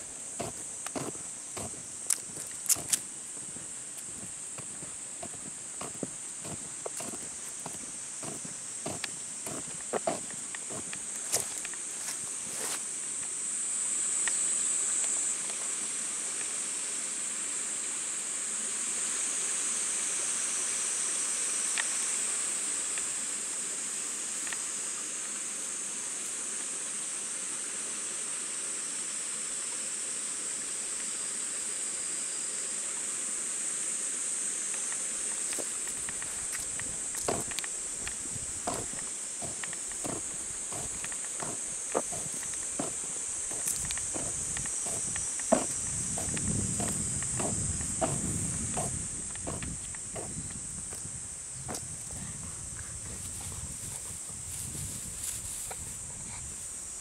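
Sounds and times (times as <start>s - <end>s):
insects chorus: 0.0s - 57.0s
rustles and knocks in grass: 35.4s - 52.2s, 53.1s - 56.8s.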